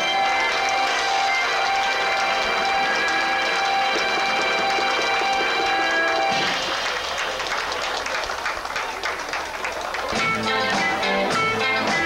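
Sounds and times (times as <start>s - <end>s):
live band music: 0.0s - 6.8s, 10.1s - 12.0s.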